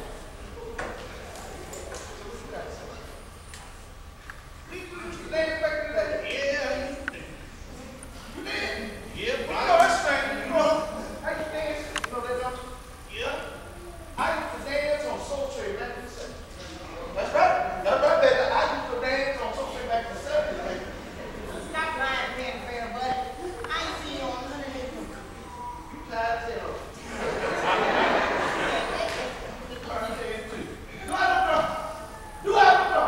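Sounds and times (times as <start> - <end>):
voice crying out: 31.5 - 33.0.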